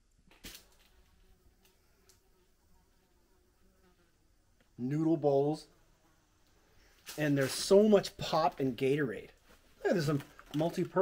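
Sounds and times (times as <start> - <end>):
flies buzzing: 0.3 - 11.0.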